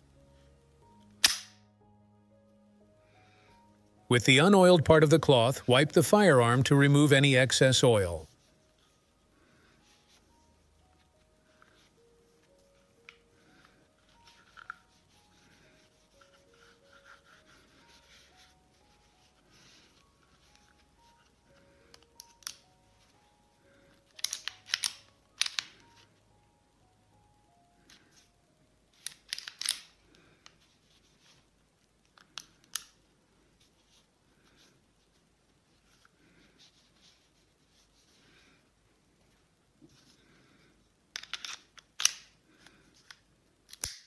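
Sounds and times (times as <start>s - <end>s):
quiet background music: 0.0s - 44.0s
pistol handling clicks: 1.2s - 1.6s, 24.2s - 25.7s, 29.0s - 29.9s, 41.2s - 42.3s, 43.7s - 44.0s
cloth wiping pistol: 14.1s - 21.1s.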